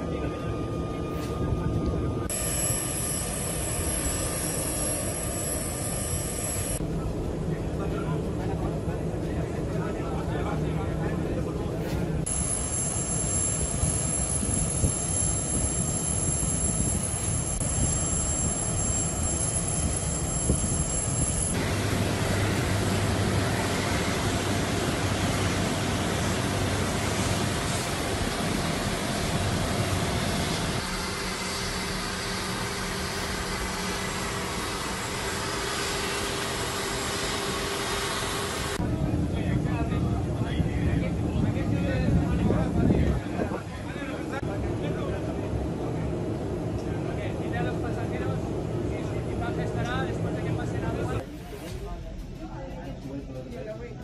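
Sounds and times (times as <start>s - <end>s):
jet engine whine and hum: 0.0s - 51.2s.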